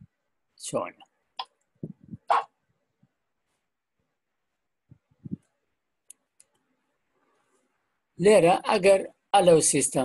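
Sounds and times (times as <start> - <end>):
small sharp clicks: 6.0 - 6.7.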